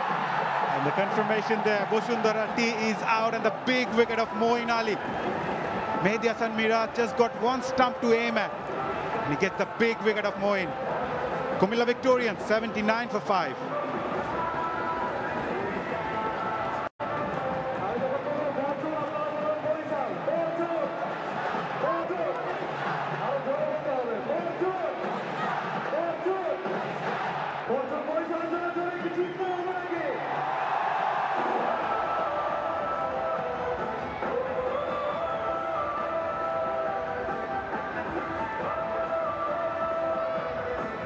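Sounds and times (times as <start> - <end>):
crowd shouting and calling: 0.0 - 41.0
crowd roar: 30.2 - 36.5.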